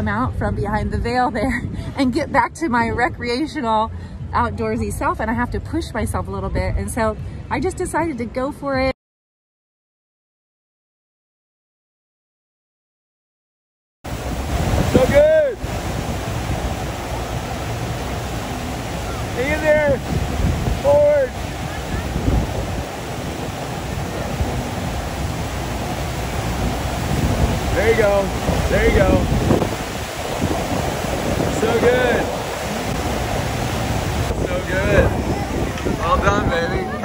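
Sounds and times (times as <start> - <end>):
wind on microphone: 0.0 - 7.9, 14.1 - 37.0
water rushing: 14.1 - 37.0.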